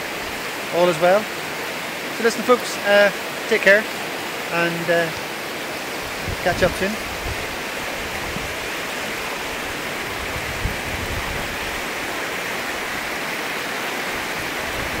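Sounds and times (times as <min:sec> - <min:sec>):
river rapids rushing over rocks: 0:00.0 - 0:15.0.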